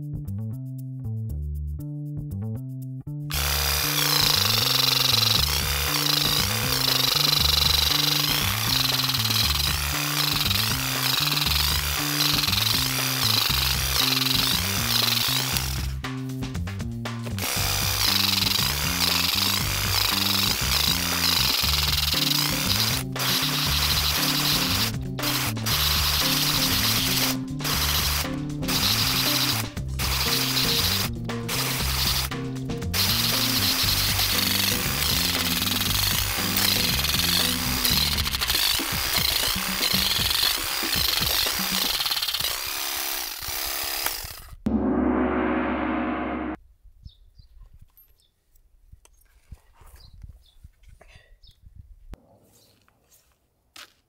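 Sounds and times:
background music: 0.0s - 41.8s
electric weeding tool buzzing: 3.3s - 16.0s, 17.2s - 32.3s, 32.9s - 44.6s.

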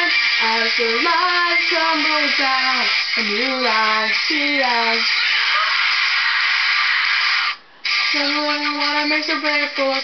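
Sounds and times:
distorted rock guitar backing track: 0.0s - 10.0s.

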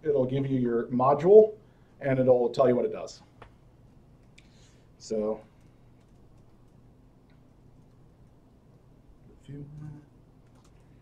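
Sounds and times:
typing on laptop keyboard: 5.6s - 6.8s, 9.7s - 11.0s.

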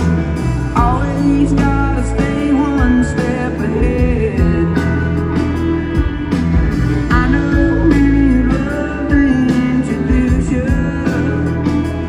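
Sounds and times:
live country band music: 0.0s - 12.0s
sliding lead guitar line: 0.0s - 12.0s.

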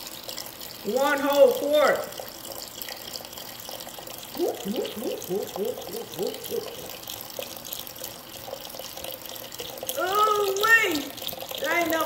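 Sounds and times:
broth pouring and splashing: 0.0s - 12.0s.

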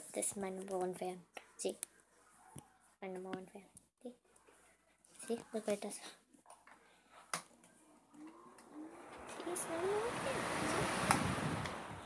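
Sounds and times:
fan motor humming: 8.2s - 12.0s.

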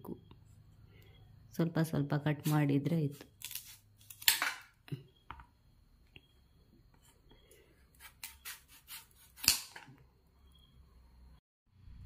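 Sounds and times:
knife slicing watermelon: 7.9s - 9.9s.

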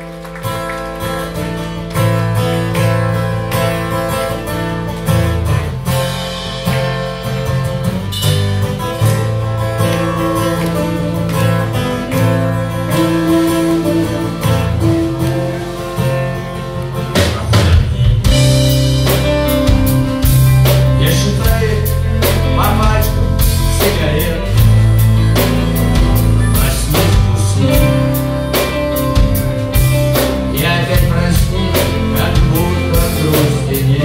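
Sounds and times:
acoustic guitar strumming: 0.0s - 34.0s
bass guitar: 0.0s - 34.0s
drum kit: 0.0s - 34.0s
electric guitar: 0.0s - 34.0s.

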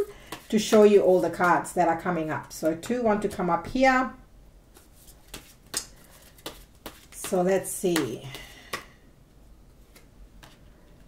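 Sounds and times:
cards being shuffled: 4.7s - 9.0s, 9.8s - 11.0s.

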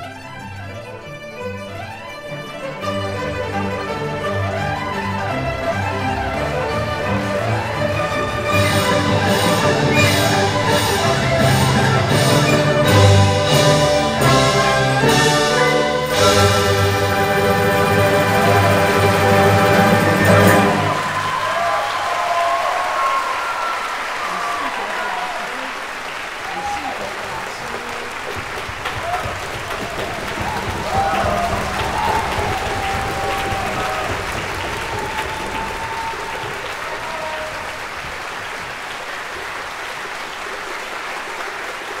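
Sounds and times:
audience applause: 1.8s - 42.0s.

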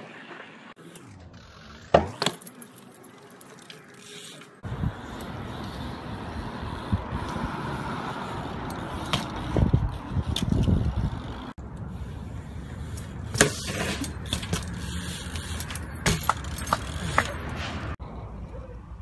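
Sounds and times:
bike tyres rolling on concrete: 0.0s - 18.0s
outdoor street noise: 0.0s - 19.0s
bike chain rattling: 0.8s - 18.0s
bike landing knocks: 1.8s - 2.5s, 15.7s - 17.4s.

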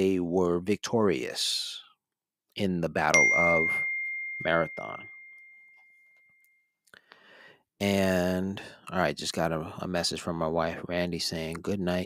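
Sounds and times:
notification chime: 3.2s - 6.2s.

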